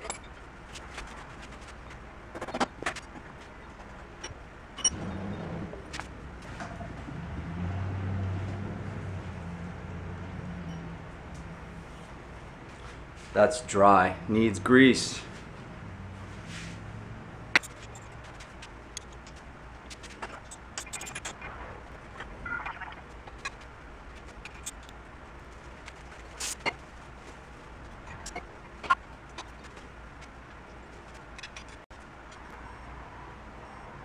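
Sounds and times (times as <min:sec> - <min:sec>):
tools clicking and knocking: 0:17.6 - 0:18.2.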